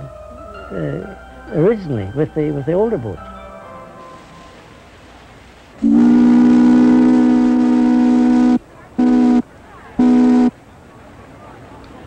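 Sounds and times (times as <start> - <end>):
steam whistle blasts: 5.8 - 10.6.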